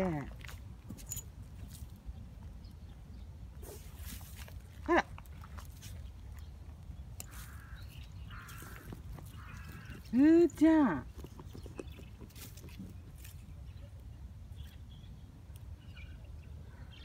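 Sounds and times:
dog paws scraping dirt: 3.6s - 4.7s, 7.2s - 13.6s.

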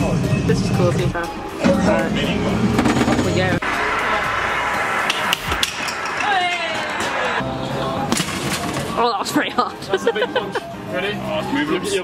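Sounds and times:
falling electronic tone: 2.9s - 8.1s
warbling high tone: 3.5s - 8.1s.

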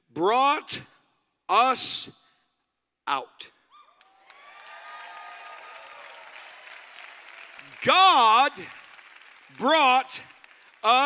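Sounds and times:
audience applauding and cheering: 4.0s - 11.0s.

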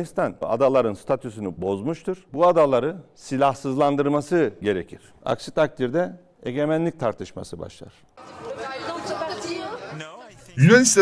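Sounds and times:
crowd murmur in a hall: 8.2s - 10.8s.

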